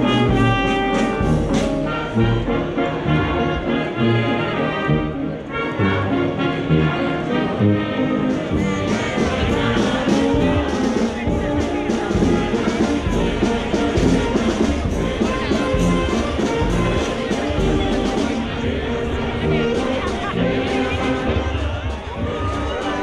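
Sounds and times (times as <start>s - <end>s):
brass band playing lively tune: 0.0s - 23.0s.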